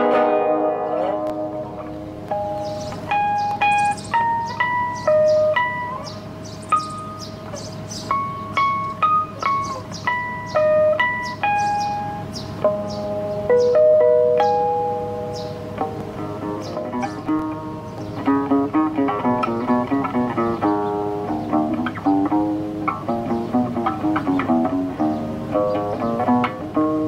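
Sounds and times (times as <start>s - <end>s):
classical guitar solo: 0.0s - 27.0s.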